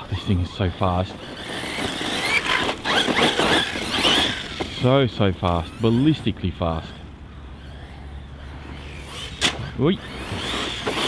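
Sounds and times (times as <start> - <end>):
electric motor whine: 7.3 - 11.0.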